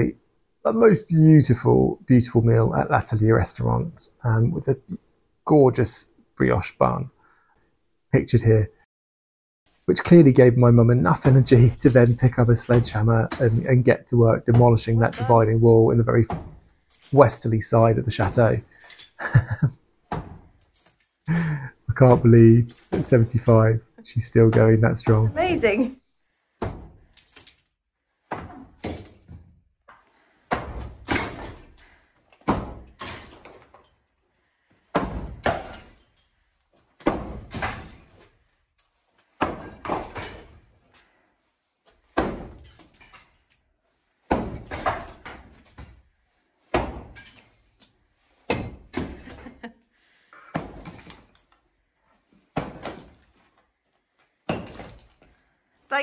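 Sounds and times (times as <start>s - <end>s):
sledgehammer striking wall: 16.3s - 16.7s, 20.1s - 20.7s, 26.6s - 27.5s, 30.5s - 33.8s, 34.9s - 36.1s, 37.0s - 38.3s, 39.4s - 40.7s, 42.1s - 43.4s, 44.3s - 46.0s, 46.7s - 47.5s, 48.4s - 49.3s, 50.5s - 51.4s, 52.6s - 53.2s, 54.5s - 55.3s
crumble of breaking plaster: 30.5s - 34.1s, 34.8s - 41.0s, 44.2s - 46.0s, 50.6s - 51.6s, 52.5s - 53.5s, 54.3s - 55.5s.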